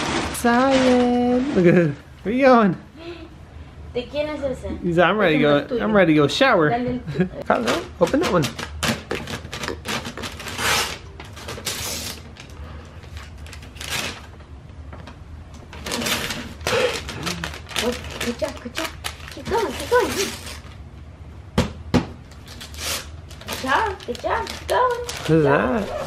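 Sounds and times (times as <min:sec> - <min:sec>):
foil wrapping paper tearing: 0:08.6 - 0:12.5, 0:13.2 - 0:14.3, 0:15.8 - 0:20.8, 0:22.4 - 0:26.0.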